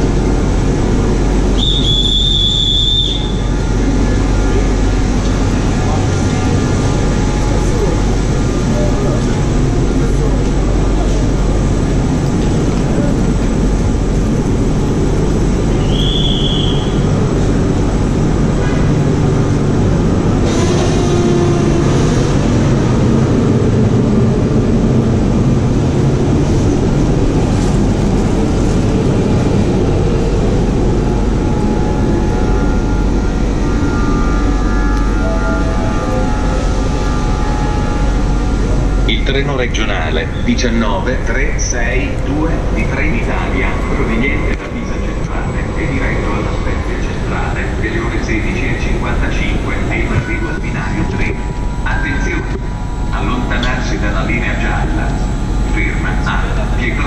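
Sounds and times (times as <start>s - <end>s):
electric train equipment humming: 0.0s - 57.0s
high tone: 30.7s - 41.1s.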